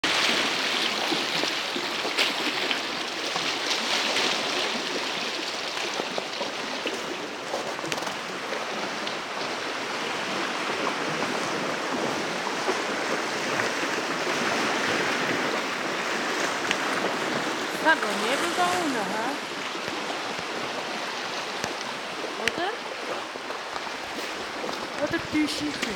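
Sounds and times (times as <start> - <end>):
lake water washing against shore: 0.0 - 25.9.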